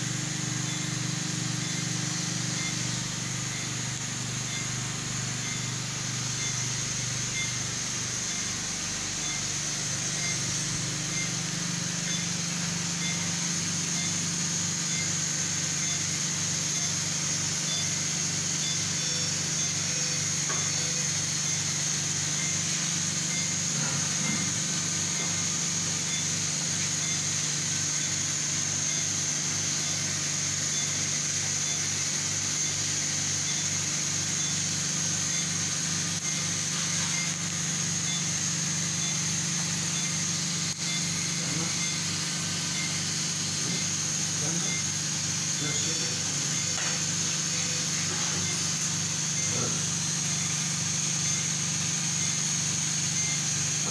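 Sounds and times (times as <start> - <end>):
machine hum: 0.0 - 53.9.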